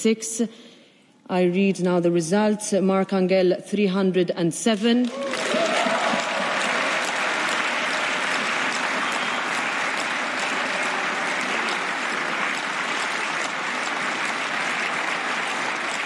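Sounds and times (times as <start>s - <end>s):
crowd applauding: 5.0s - 16.0s.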